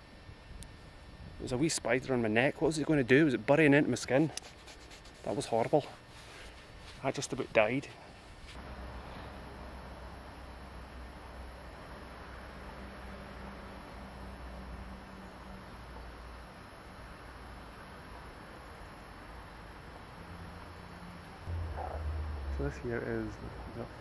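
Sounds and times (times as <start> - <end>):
faint low hum: 0.0 - 24.0
low rumble: 21.5 - 24.0.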